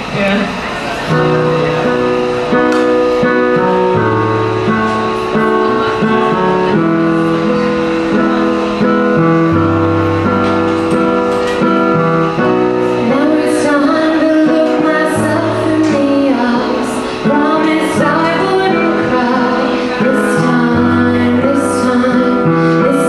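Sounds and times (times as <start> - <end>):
keyboard piano chords: 0.7 - 23.0
woman singing: 13.0 - 23.0.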